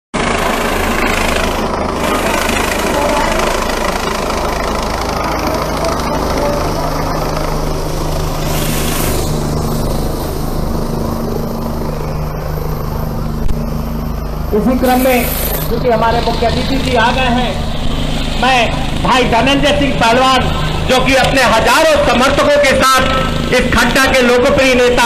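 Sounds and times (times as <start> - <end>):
helicopter rotor and engine: 0.2 - 25.0.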